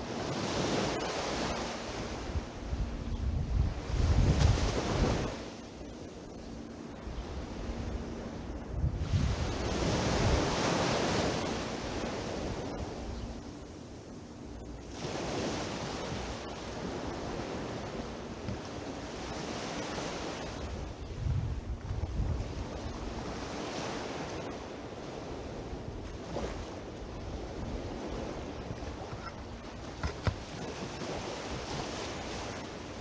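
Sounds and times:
small waves breaking on sand: 0:00.0 - 0:02.6, 0:03.7 - 0:05.6, 0:09.0 - 0:13.0, 0:14.9 - 0:21.0, 0:22.0 - 0:33.0
wind rumbling on microphone: 0:00.0 - 0:33.0.

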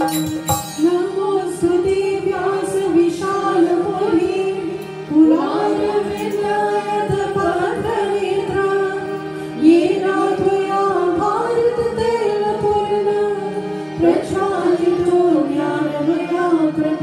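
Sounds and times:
woman singing devotional song: 0:00.0 - 0:17.0.

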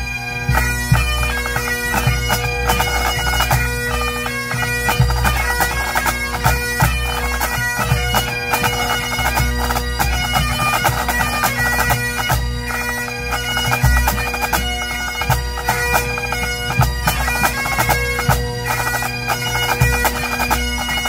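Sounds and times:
bagpipes playing: 0:00.0 - 0:21.0.

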